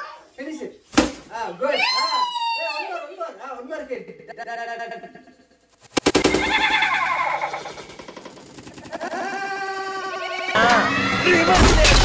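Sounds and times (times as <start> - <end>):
stick whacking a pinata: 0.9 - 1.3
excited high-pitched voices calling: 6.2 - 8.2.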